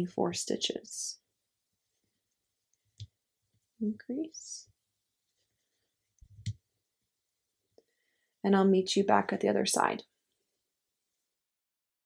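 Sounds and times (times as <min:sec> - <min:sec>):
person speaking: 0:03.8 - 0:04.8.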